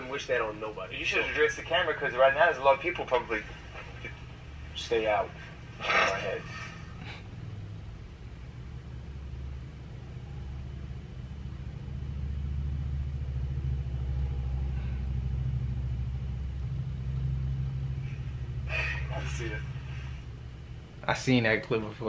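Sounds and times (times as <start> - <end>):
low droning rumble: 0.0 - 22.0.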